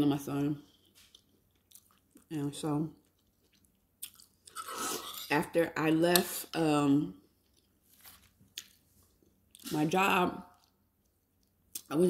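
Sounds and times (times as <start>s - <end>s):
wet chewing: 0.7s - 2.3s, 3.0s - 4.6s, 7.4s - 9.7s.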